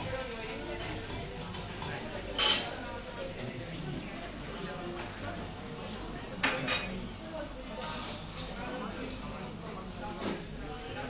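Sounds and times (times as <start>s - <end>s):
murmur of chatter: 0.0s - 11.0s
dishes clinking: 1.1s - 2.8s, 6.4s - 7.0s.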